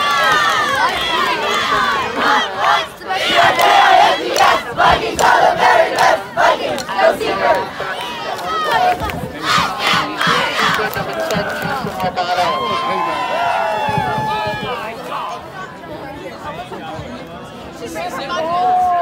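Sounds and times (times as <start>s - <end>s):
cheerleaders shouting a cheer: 0.0s - 14.8s.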